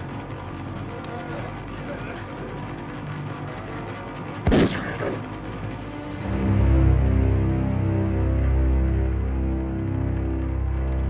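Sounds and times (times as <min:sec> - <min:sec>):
low film score music: 0:00.0 - 0:11.0
gunshot with echo: 0:04.4 - 0:05.2.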